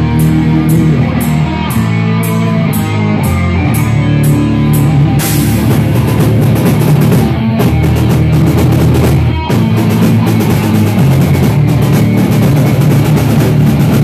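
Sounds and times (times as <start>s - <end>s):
drums and cymbals: 0.0s - 14.0s
electric guitar: 0.0s - 14.0s.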